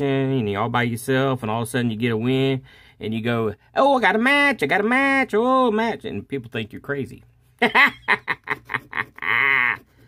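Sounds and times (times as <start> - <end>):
man laughing: 7.6 - 10.0.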